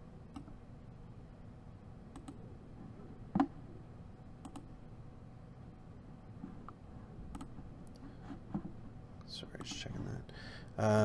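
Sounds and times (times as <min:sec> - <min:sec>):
computer mouse clicks: 0:00.3 - 0:00.6, 0:02.1 - 0:02.4, 0:04.4 - 0:04.7, 0:06.6 - 0:08.0.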